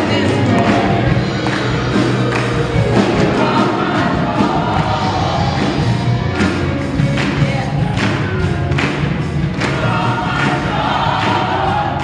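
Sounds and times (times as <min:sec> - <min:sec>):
gospel choir singing: 0:00.0 - 0:12.0
hand claps: 0:00.6 - 0:02.8, 0:06.3 - 0:11.6.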